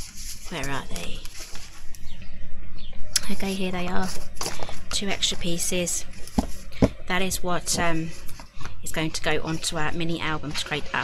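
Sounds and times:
paper and card shuffling: 0.0s - 2.2s, 3.2s - 8.8s.

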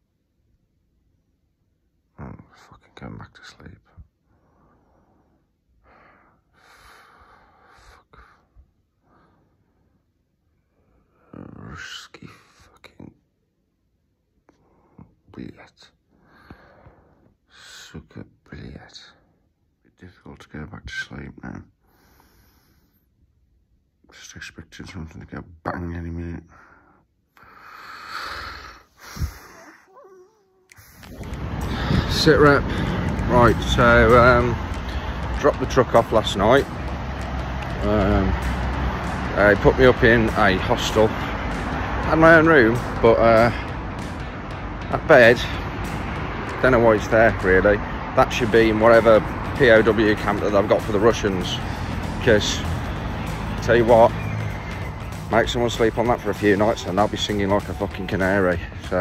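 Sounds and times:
man breathing: 4.2s - 11.3s, 16.1s - 17.6s, 21.8s - 23.2s, 26.4s - 30.0s, 30.7s - 33.2s, 34.8s - 35.4s
breathy exhale: 16.2s - 17.3s, 21.8s - 23.0s, 26.5s - 30.0s
street noise: 30.8s - 59.0s.

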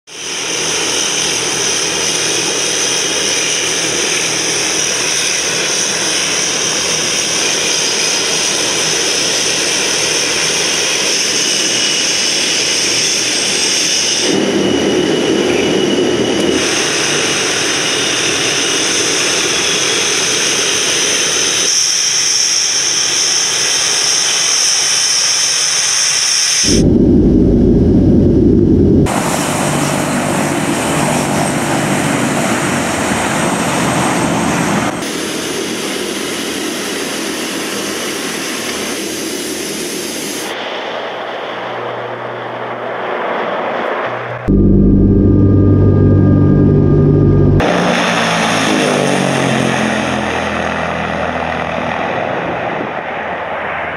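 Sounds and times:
turboprop engines running: 0.1s - 25.8s, 26.6s - 42.7s, 44.1s - 53.9s
high engine whine: 0.1s - 36.3s, 38.9s - 53.9s.

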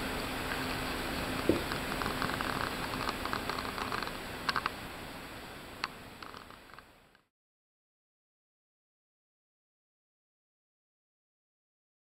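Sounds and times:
light clicks and ticks: 1.4s - 4.7s.

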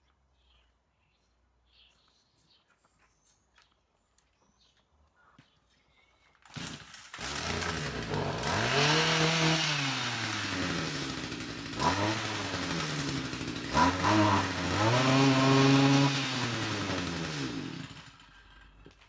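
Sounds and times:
two-stroke engine revving: 6.5s - 18.8s.

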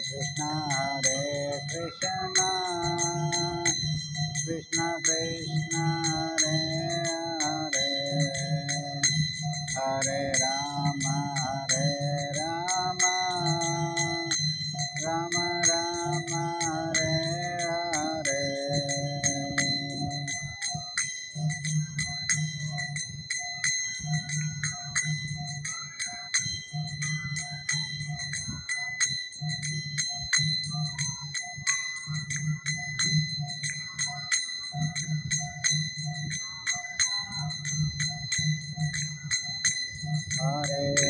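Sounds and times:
people singing: 0.0s - 20.8s, 39.0s - 41.0s
hand cymbals struck rhythmically: 0.0s - 41.0s.

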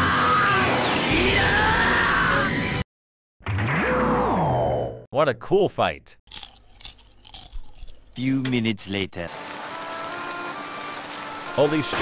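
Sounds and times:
popcorn crunching: 6.3s - 8.4s.

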